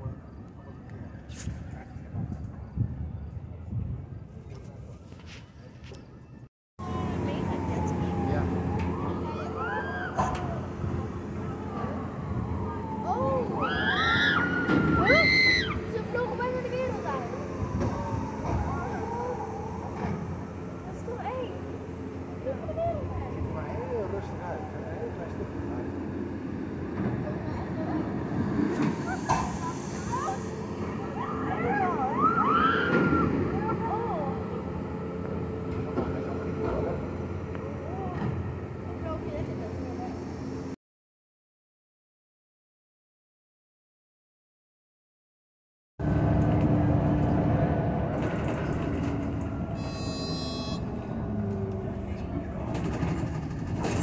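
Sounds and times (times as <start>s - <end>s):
riders shrieking and yelling: 13.4s - 16.1s, 31.1s - 33.4s.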